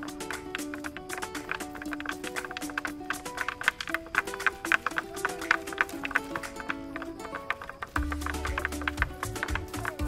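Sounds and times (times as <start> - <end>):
background music simple melody: 0.0 - 10.0
sticks tapping together: 0.0 - 10.0.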